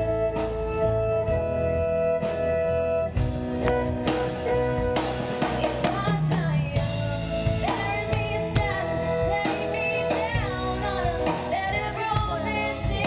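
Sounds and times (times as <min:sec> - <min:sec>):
live country band playing: 0:00.0 - 0:13.0
woman singing: 0:05.4 - 0:13.0.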